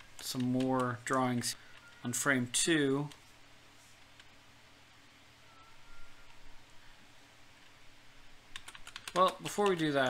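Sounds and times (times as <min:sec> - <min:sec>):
computer keyboard clicks: 0:08.5 - 0:10.0.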